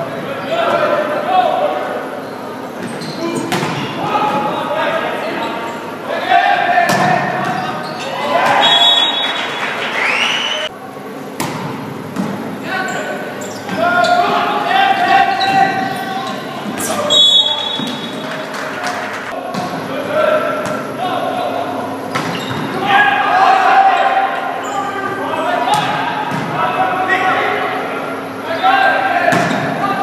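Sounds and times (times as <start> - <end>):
players shouting: 3.0 - 10.7, 12.6 - 30.0
spectators' voices: 12.0 - 30.0.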